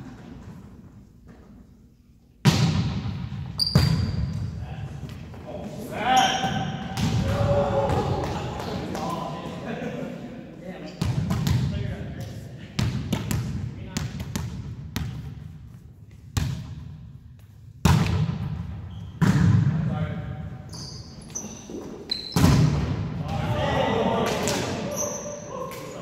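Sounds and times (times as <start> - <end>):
players' voices: 4.6 - 14.3, 23.1 - 26.0.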